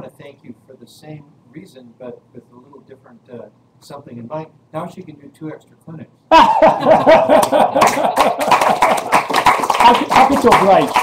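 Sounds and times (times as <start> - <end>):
loud laughter: 6.3 - 9.3.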